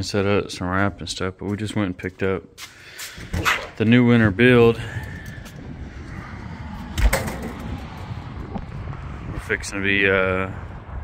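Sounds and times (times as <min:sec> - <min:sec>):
low outdoor rumble: 0:03.7 - 0:11.0.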